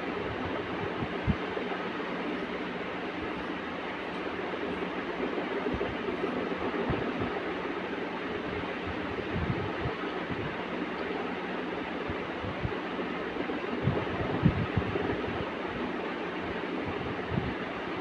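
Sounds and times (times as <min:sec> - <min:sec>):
steady rushing noise: 0:00.0 - 0:18.0.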